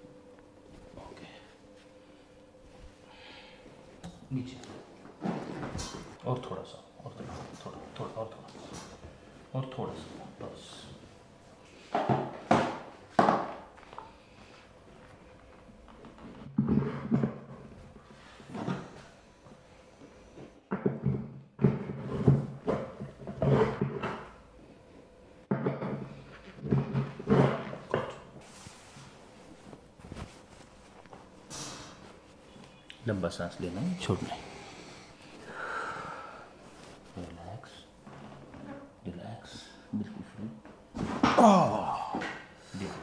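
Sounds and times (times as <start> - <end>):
towel handling sounds: 28.4 - 33.2, 36.6 - 38.6.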